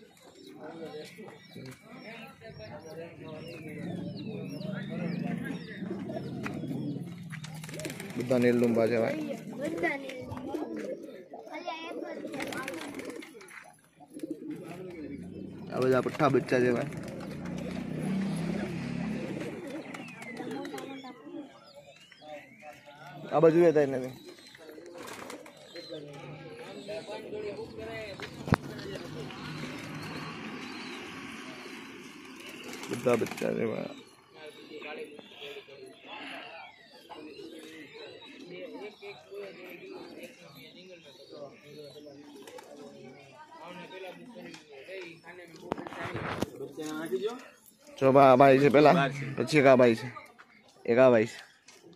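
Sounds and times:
pigeons cooing: 0:00.0 - 0:50.2.

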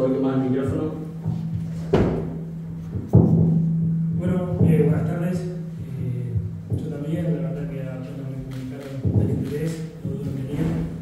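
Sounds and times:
steady low hum: 0:00.0 - 0:11.0
thumps on microphone: 0:01.2 - 0:04.9, 0:09.0 - 0:11.0
person speaking: 0:04.1 - 0:11.0.

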